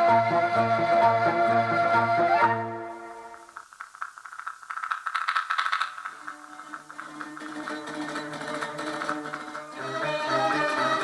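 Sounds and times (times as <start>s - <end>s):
rapid rattling percussion: 3.3s - 11.0s.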